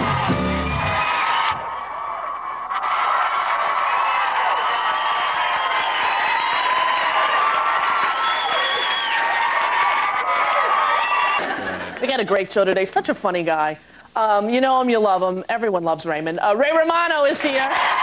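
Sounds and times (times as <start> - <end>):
audience cheering and yelling: 0.0 - 12.0, 17.6 - 18.0
steady applause: 0.0 - 12.1, 17.4 - 18.0.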